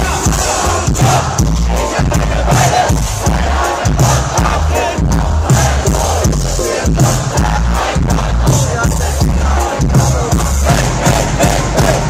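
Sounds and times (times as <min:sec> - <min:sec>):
crowd noise: 0:00.0 - 0:12.0
live hip-hop music with heavy bass: 0:00.0 - 0:12.0.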